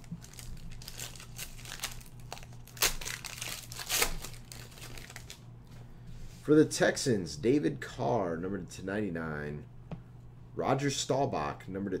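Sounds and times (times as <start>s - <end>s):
foil wrapper crinkling: 0.0s - 5.4s.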